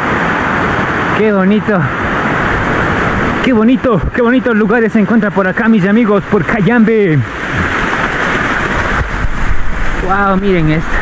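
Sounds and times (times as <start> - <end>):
water splashing down rock wall: 5.4 - 11.0.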